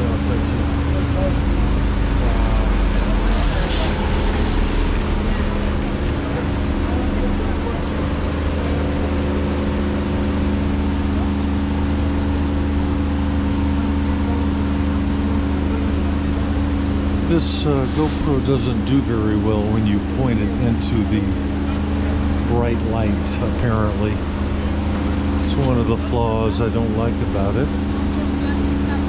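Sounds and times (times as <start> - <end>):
bus engine idling: 0.0 - 29.0.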